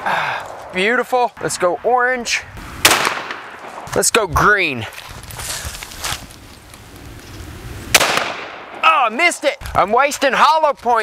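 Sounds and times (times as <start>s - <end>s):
pistol shots: 2.8s - 3.8s, 7.9s - 8.8s.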